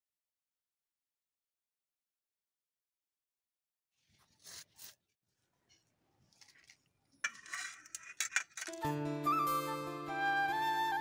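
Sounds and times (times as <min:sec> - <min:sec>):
flute melody with low drone: 0:08.8 - 0:11.0.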